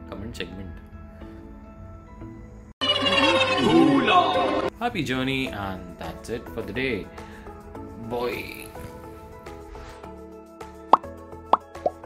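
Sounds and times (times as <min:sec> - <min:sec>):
background music sustained notes: 0:00.0 - 0:12.0.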